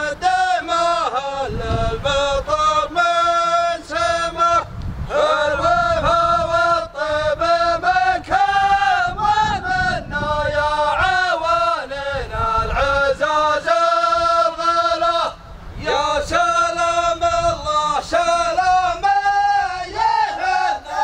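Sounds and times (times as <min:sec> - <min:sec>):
male voices chanting: 0:00.0 - 0:21.0.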